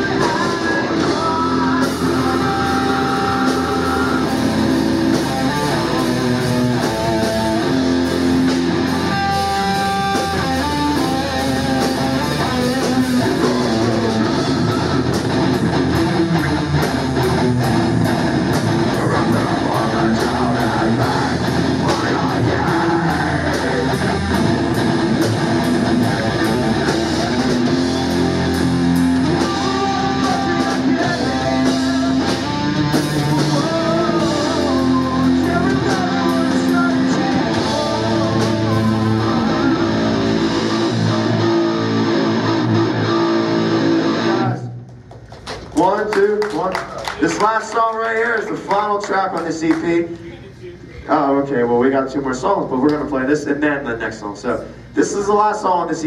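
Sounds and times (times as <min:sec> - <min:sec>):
heavy metal band playing: 0:00.0 - 0:44.8.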